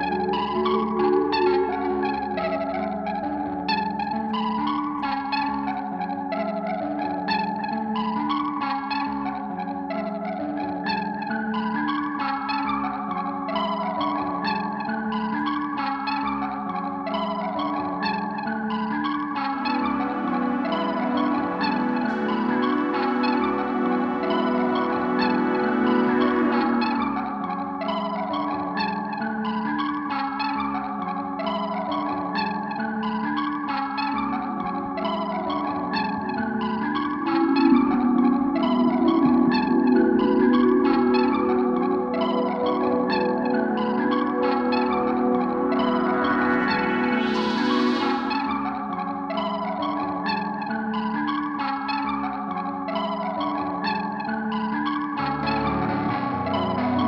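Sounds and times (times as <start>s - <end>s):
synthesizer chords wavering: 0.0s - 57.0s
analog synthesizer repeating figure: 19.7s - 27.4s, 55.2s - 57.0s.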